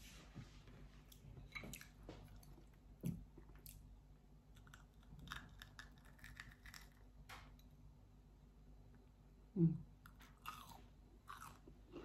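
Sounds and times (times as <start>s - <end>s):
chewing crunchy food: 4.5s - 7.0s, 10.1s - 12.0s.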